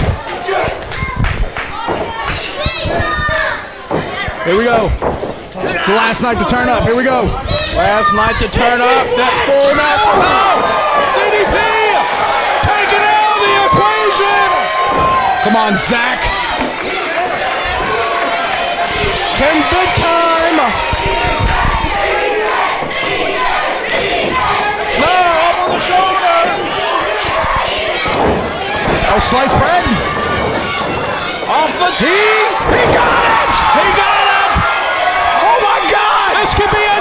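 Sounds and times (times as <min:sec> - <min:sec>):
crowd shouting and cheering: 0:00.0 - 0:37.0
short thumps: 0:01.0 - 0:05.9.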